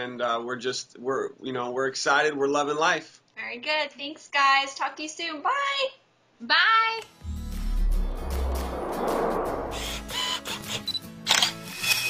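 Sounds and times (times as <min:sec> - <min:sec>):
background music: 0:07.0 - 0:12.0
short high autofocus beeps: 0:10.8 - 0:11.0
camera shutter clicks: 0:11.2 - 0:11.6.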